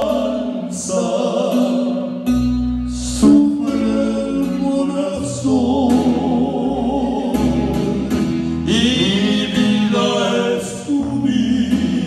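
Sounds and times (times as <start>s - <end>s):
men singing together: 0.0s - 2.1s, 3.1s - 12.0s
instrumental accompaniment with bass: 0.0s - 12.0s.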